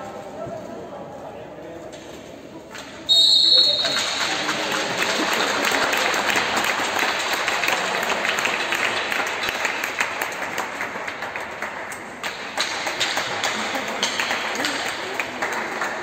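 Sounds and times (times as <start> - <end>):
crowd applause: 3.6 - 16.0.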